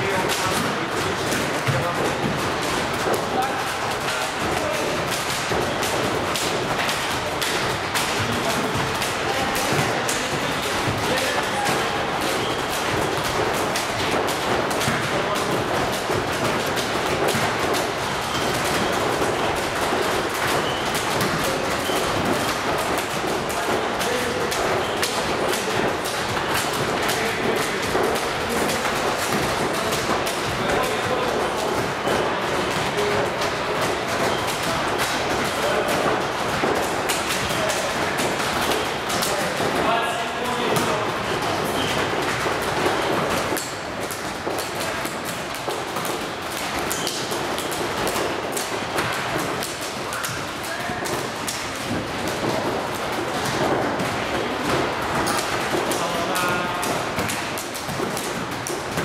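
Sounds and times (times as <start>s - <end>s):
hubbub of voices: 0.0s - 59.0s
volleyballs thudding on gym floor: 0.0s - 59.0s.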